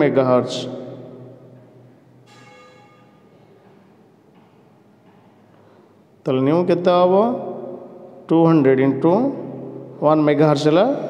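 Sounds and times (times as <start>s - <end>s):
faint bell-like ring: 2.3s - 3.5s.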